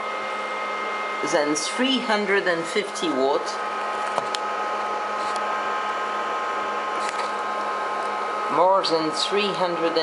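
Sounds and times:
constant high whine: 0:00.0 - 0:10.0
cooling fans whirring: 0:00.0 - 0:10.0.

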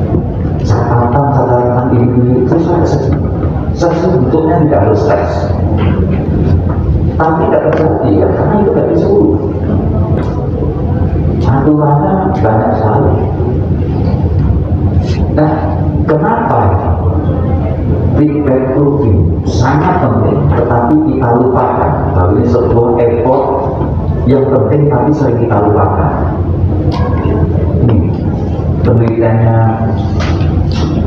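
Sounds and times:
low hum: 0:00.0 - 0:31.0
man speaking over speakers: 0:00.0 - 0:31.0
steady low rumbling: 0:00.0 - 0:31.0
speech: 0:00.6 - 0:05.6, 0:07.2 - 0:10.4, 0:11.4 - 0:13.4, 0:15.1 - 0:30.8.

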